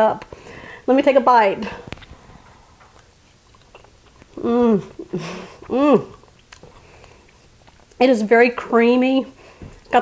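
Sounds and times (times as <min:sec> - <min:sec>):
person chewing soft food: 0:01.8 - 0:08.0.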